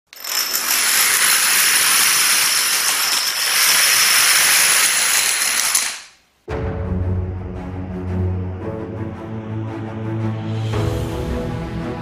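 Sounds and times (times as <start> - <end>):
dominoes toppling: 0.1 - 6.2.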